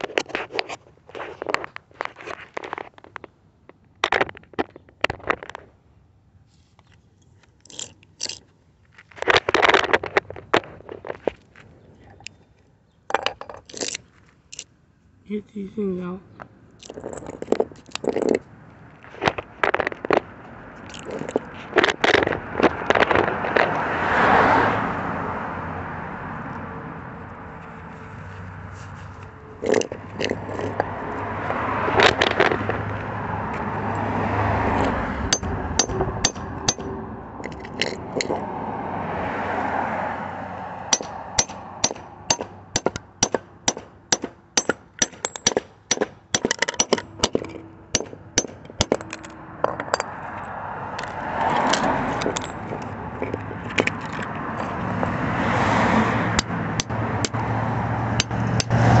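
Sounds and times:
hammer striking steel: 0:35.3 - 0:36.9, 0:40.9 - 0:49.3.

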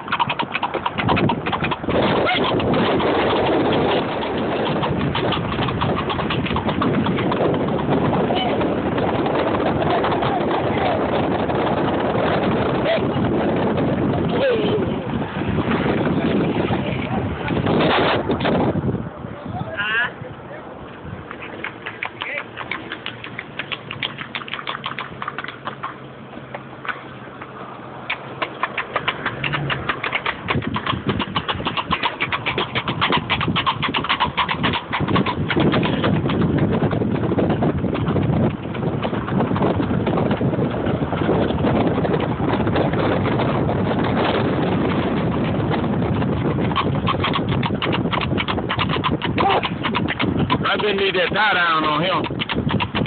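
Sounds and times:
horse hooves on paved road: 0:00.0 - 0:53.0
steady rushing noise: 0:01.1 - 0:25.3.

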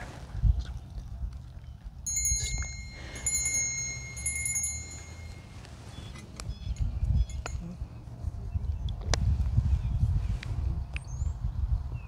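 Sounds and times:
metallic chime ringing: 0:02.1 - 0:05.7.

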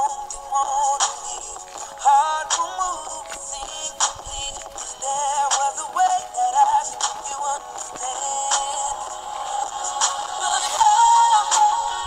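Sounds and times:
recorded pop ballad: 0:00.0 - 0:12.0.

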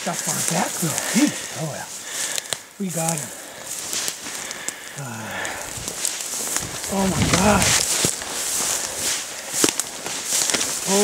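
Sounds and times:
footsteps through undergrowth: 0:00.0 - 0:11.0.

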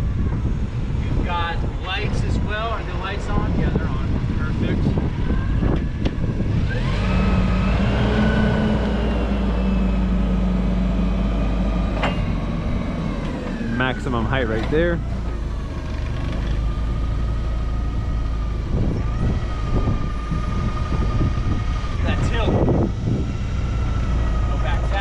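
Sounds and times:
hydraulic whine: 0:02.9 - 0:25.0
forklift engine revving: 0:03.0 - 0:25.0.

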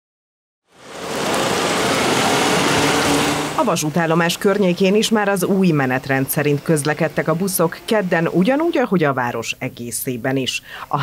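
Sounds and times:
bus engine idling: 0:00.7 - 0:08.0
street noise hiss: 0:00.7 - 0:11.0.

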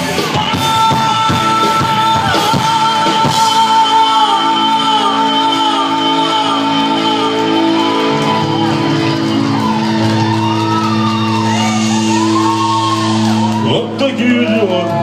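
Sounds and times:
live rock band: 0:00.0 - 0:15.0
audience shouting and whooping: 0:00.5 - 0:15.0.

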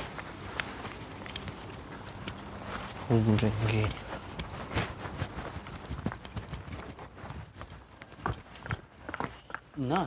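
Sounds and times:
running footsteps: 0:00.0 - 0:09.4.

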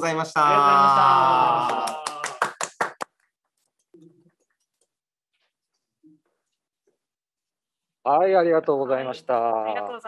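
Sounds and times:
people clapping: 0:00.8 - 0:03.2.

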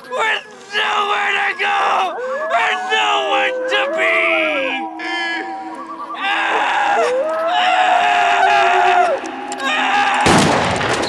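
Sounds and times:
person screaming: 0:00.7 - 0:10.4
gunshot: 0:10.2 - 0:11.0.

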